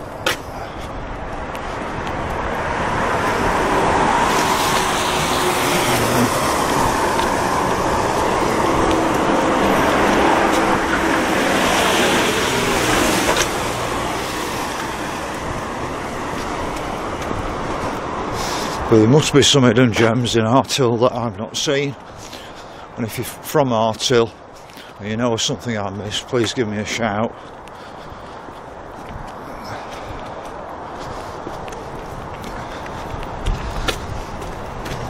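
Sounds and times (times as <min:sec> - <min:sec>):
cars driving past: 0:00.0 - 0:21.3.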